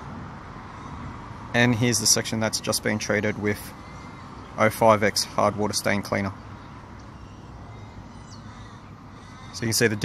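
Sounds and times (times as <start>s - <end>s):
distant bird calling: 0.0s - 10.0s
faint outdoor background: 0.0s - 10.0s.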